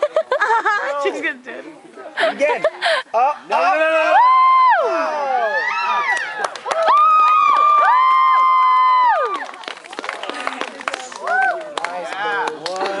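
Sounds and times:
audience chatter: 0:00.0 - 0:03.8, 0:09.4 - 0:13.0
scattered clapping: 0:06.1 - 0:13.0.

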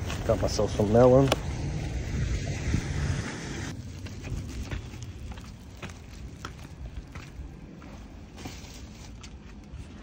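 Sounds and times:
low outdoor rumble: 0:00.0 - 0:10.0
wind on microphone: 0:01.3 - 0:05.4
light footsteps: 0:03.8 - 0:10.0.

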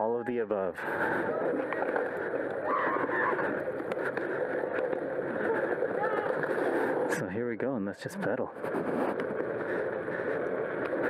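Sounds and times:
bike tyres rolling over pavers: 0:00.0 - 0:11.0.

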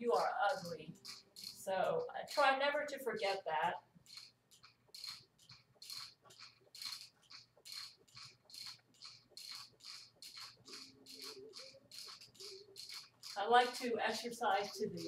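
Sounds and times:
exercise glider rhythmic swishing: 0:00.0 - 0:15.0.

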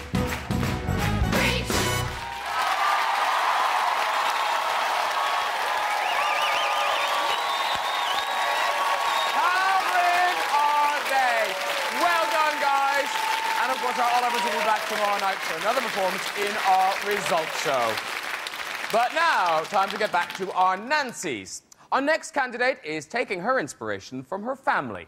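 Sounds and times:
audience applauding and cheering: 0:00.0 - 0:21.1
high screams: 0:02.2 - 0:15.0.

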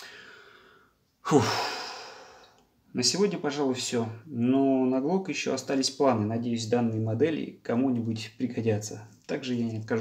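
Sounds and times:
person sighing: 0:00.0 - 0:02.6.

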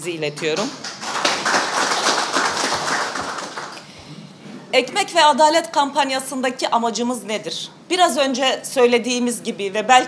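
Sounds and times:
audience applauding: 0:00.7 - 0:03.9.

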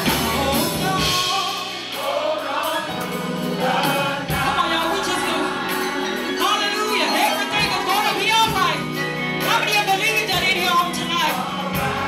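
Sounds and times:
church band playing: 0:00.0 - 0:12.0
gospel choir singing: 0:00.0 - 0:12.0.

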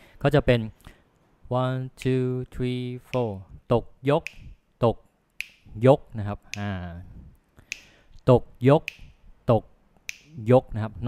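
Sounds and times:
person speaking rhythm syllables: 0:01.5 - 0:11.0
finger snaps: 0:04.2 - 0:04.6, 0:05.4 - 0:05.7, 0:07.6 - 0:08.0, 0:08.8 - 0:09.2, 0:10.0 - 0:10.4.

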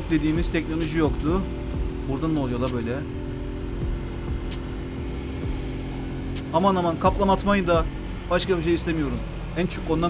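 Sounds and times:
motorcycle engine running: 0:00.0 - 0:10.0
road noise: 0:00.0 - 0:10.0.

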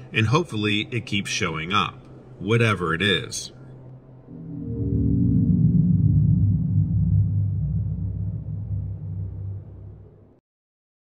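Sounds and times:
dark ambient drone music: 0:03.5 - 0:10.4.

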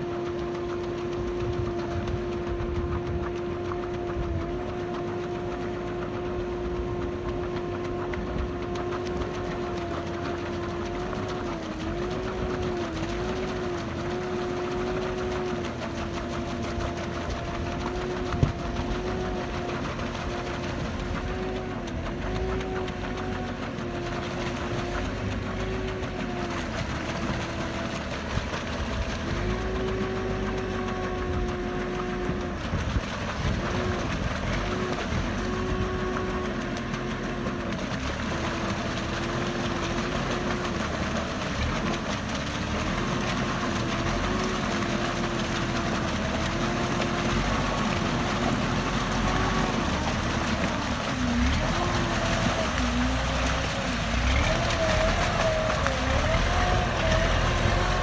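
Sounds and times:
whining diesel engine: 0:00.0 - 0:58.0.

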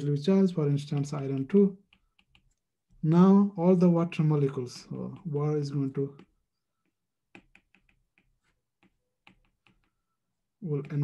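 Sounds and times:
stylus tapping on tablet screen: 0:00.5 - 0:03.1, 0:05.1 - 0:11.0.

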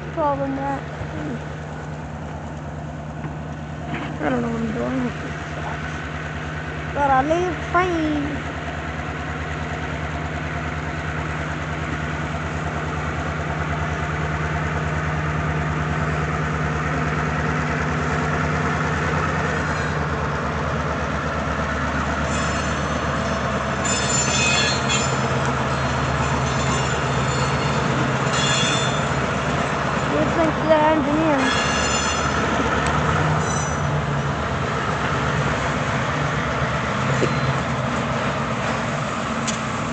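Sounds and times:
diesel locomotive running: 0:00.0 - 0:39.9
metallic wheel squeals: 0:19.6 - 0:20.0, 0:22.1 - 0:29.4, 0:31.3 - 0:34.1, 0:37.1 - 0:37.7.

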